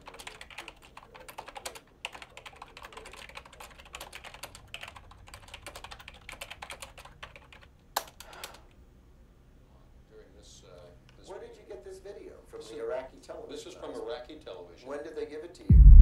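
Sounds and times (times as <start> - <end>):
rapid typing on keyboard: 0.0 - 8.7.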